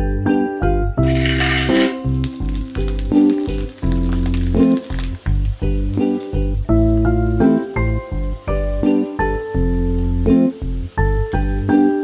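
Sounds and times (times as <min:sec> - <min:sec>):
background music with plucked notes: 0:00.0 - 0:12.0
hot oil sizzling: 0:01.0 - 0:12.0.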